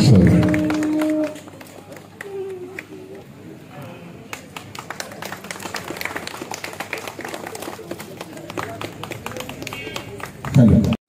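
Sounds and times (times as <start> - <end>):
audience clapping: 0.0 - 3.2, 4.2 - 11.0.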